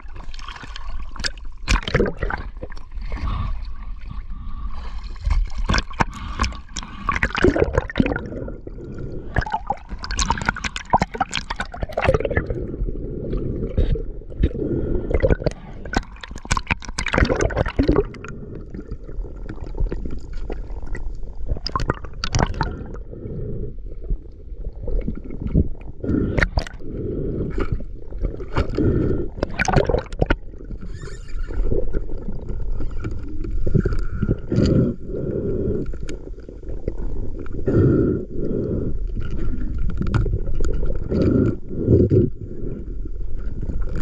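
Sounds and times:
water splashing: 0.0 - 12.5, 15.1 - 18.2, 27.6 - 34.4
muffled underwater rushing water: 0.0 - 44.0.

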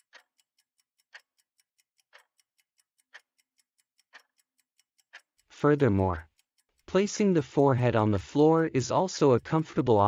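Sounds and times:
clock ticking: 0.0 - 10.0.

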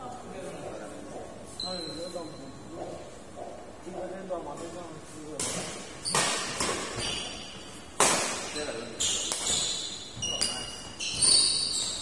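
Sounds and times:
racket striking shuttlecock: 5.4 - 8.6, 9.2 - 11.5.

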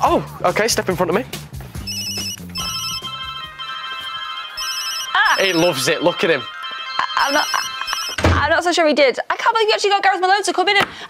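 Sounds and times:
mobile phone ringtones: 1.8 - 8.5.

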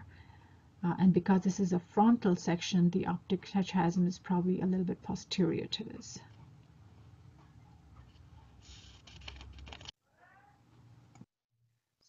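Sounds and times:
faint low hum: 0.0 - 11.2.

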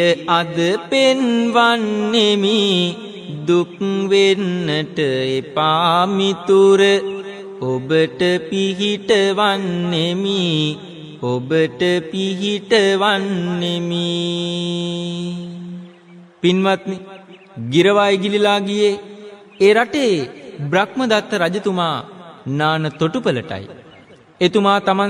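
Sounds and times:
man chanting melodic verse: 0.0 - 25.0.

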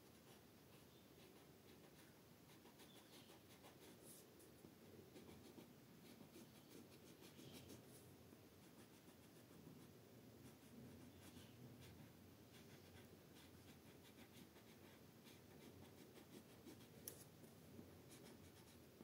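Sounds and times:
pencil scratching on paper: 0.2 - 4.2, 5.1 - 8.0, 8.6 - 17.3, 18.1 - 18.8.

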